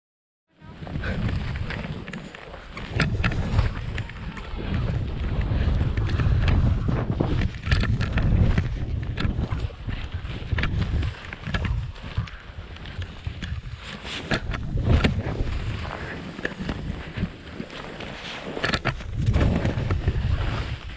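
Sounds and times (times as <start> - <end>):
wind rumbling on microphone: 0.6 - 20.9
skis and poles knocking: 0.7 - 20.9
skis hissing through snow: 15.3 - 18.6.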